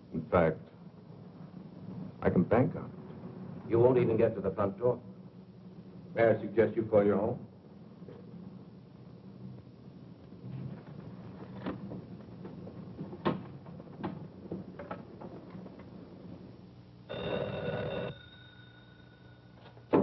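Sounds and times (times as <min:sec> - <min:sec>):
telephone bell ringing: 0:17.1 - 0:19.8.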